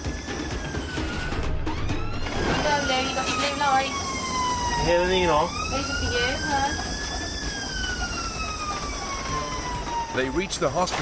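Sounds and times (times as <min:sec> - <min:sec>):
ambulance siren wailing: 0:00.0 - 0:11.0
road noise: 0:00.0 - 0:11.0
vehicle engine rumble: 0:00.0 - 0:11.0.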